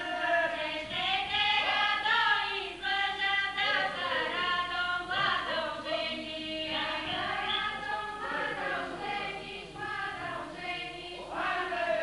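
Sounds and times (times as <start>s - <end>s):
group singing folk song: 0.0s - 12.0s.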